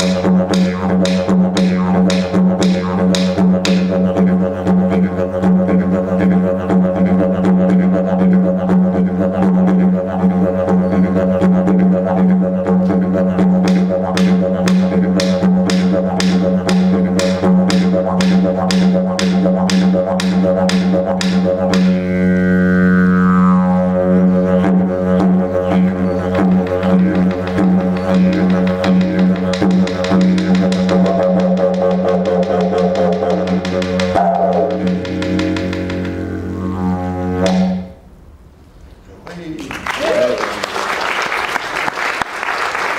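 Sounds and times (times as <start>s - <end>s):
didgeridoo drone: 0.0s - 38.1s.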